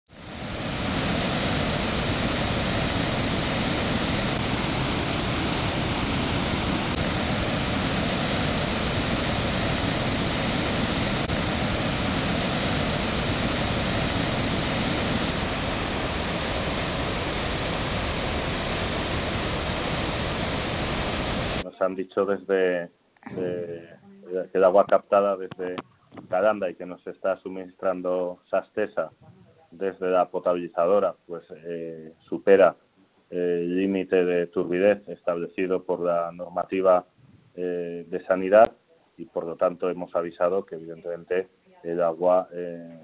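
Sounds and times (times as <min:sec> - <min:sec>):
steady rushing noise: 0:00.1 - 0:21.7.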